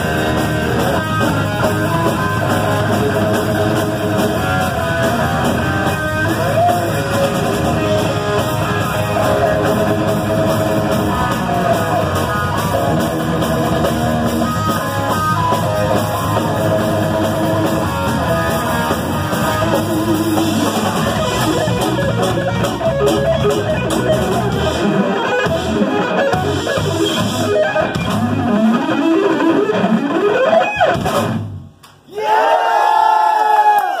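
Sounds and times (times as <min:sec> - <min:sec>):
distorted electric guitar lead: 0:00.0 - 0:31.8.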